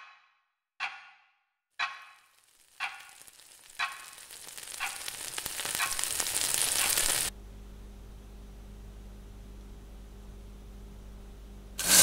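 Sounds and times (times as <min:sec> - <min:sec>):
crackling hiss: 0:02.0 - 0:07.3
steady low hum: 0:06.8 - 0:12.0.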